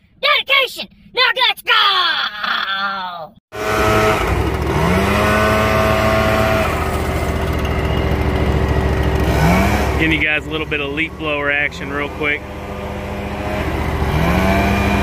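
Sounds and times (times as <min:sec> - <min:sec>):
man yelling: 0:00.2 - 0:03.2
leaf blower engine revving: 0:03.5 - 0:15.0.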